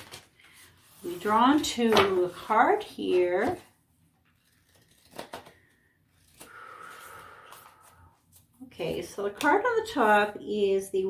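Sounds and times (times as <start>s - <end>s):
cards sliding and rustling: 4.3s - 8.5s.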